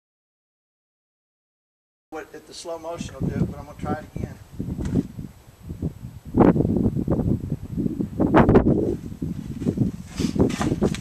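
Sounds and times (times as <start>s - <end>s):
wind buffeting microphone: 2.8s - 11.0s
rustling: 8.9s - 11.0s.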